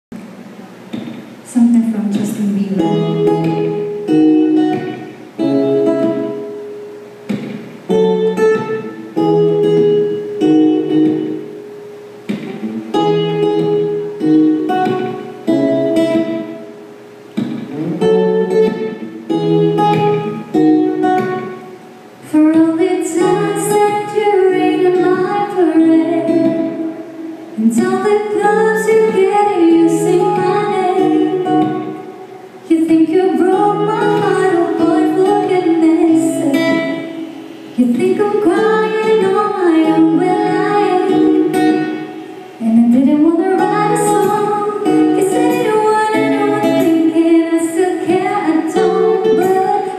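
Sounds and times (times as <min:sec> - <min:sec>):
acoustic guitar picking chords: 0:00.1 - 0:49.9
woman singing: 0:01.5 - 0:03.8, 0:22.2 - 0:49.9.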